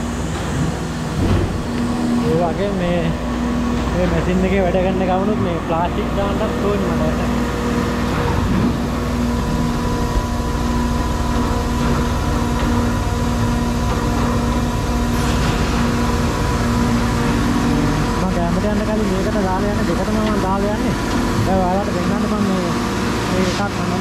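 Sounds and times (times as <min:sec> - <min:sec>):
machinery humming: 0:00.0 - 0:24.0
person speaking: 0:02.1 - 0:07.4.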